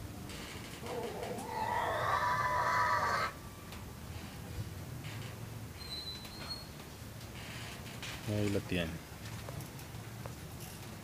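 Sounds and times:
drawn-out animal call: 0:00.8 - 0:03.4.

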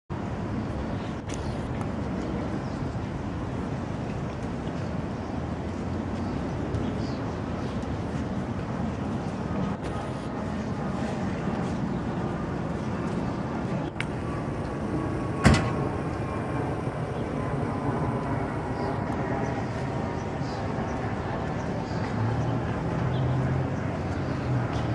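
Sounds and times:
low vehicle rumble: 0:13.7 - 0:21.0.

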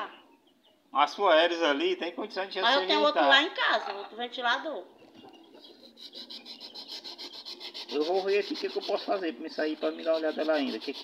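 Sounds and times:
hand tool rasping: 0:05.9 - 0:11.0.

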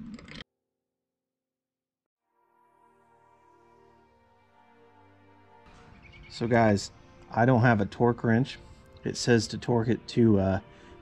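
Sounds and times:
faint steady musical tone: 0:02.2 - 0:11.0.

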